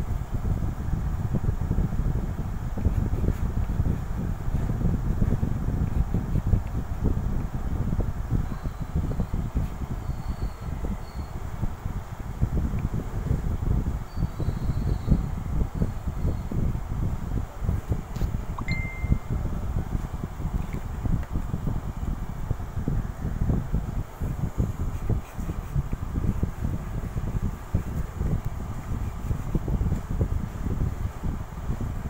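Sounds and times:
faint high ringing tones: 18.6 - 19.4.

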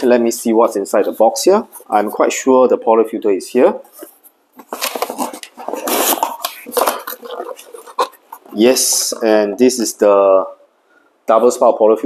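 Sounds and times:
cardboard box rustling: 3.9 - 9.6.

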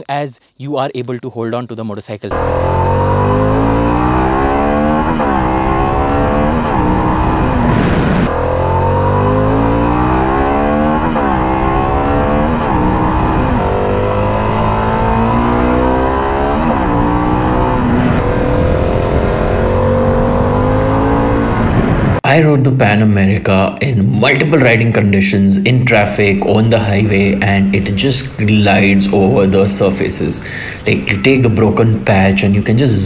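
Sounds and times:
motorcycle engine revving: 2.3 - 22.2.

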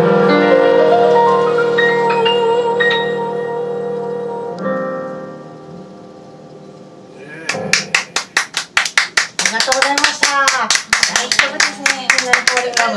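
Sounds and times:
piano chord ringing: 0.0 - 7.8
audience clapping: 7.5 - 12.9.

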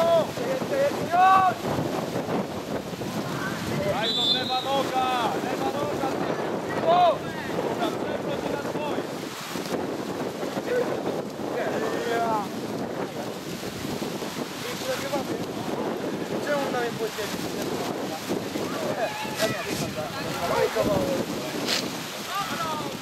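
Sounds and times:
wind noise on microphone: 0.0 - 23.0
voices shouting calls: 18.6 - 20.9.

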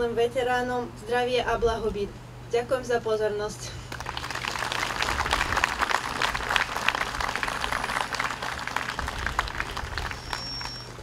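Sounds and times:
audience applauding: 3.9 - 11.0.

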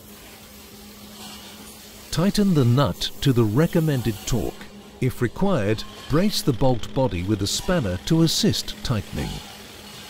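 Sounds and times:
faint background hum: 0.0 - 10.0.

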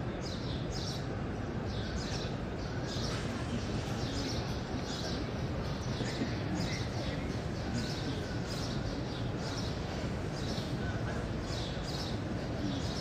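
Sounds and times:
crowd hubbub: 0.0 - 13.0
small birds chirping: 0.1 - 13.0.

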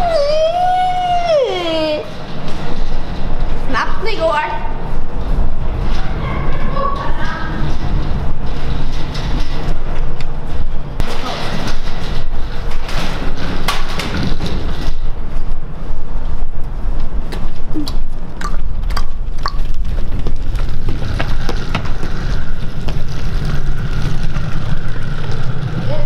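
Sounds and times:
handheld microphone rumble: 0.0 - 26.0.

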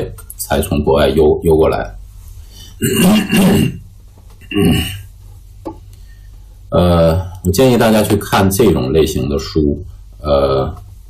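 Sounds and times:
man clearing his throat: 2.8 - 3.8, 4.4 - 5.1.

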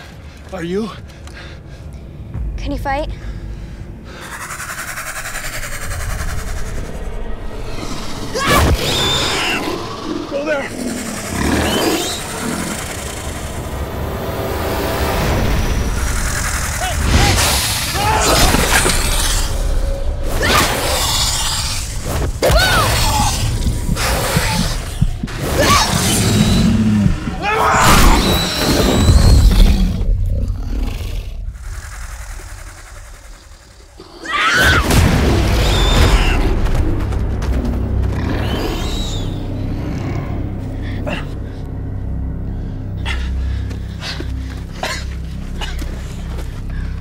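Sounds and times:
horror score music: 0.0 - 47.0
people yelling and screaming: 16.7 - 18.9, 27.3 - 29.1.

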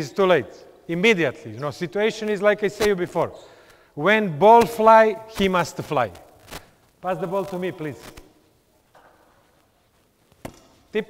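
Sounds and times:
basketball slap: 10.4 - 10.8.

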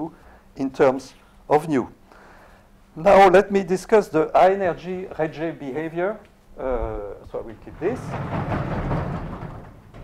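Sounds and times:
blackboard panels sliding: 7.4 - 10.0.

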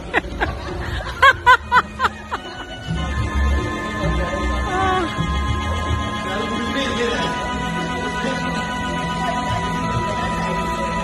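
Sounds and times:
person laughing: 0.0 - 3.0.

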